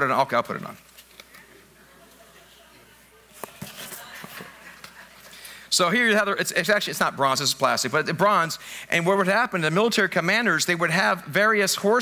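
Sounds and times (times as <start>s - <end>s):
man speaking: 0.0s - 0.8s, 5.7s - 12.0s.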